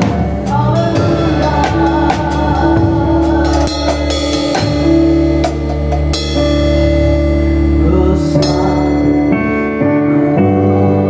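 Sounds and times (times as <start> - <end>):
drum strikes: 0.0 - 9.2
band playing slow worship song: 0.0 - 11.0.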